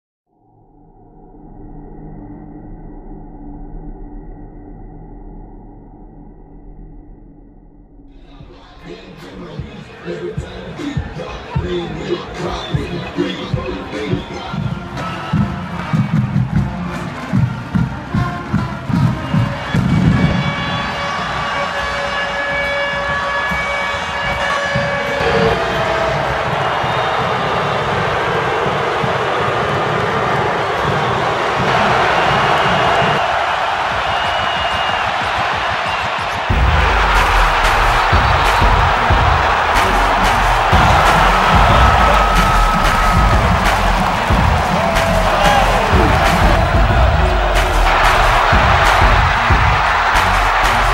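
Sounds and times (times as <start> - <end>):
stadium crowd cheering: 8.2 - 50.9
music with heavy low beat: 30.8 - 50.9
marching drumline beating: 31.6 - 50.9
brass chords: 36.5 - 50.9.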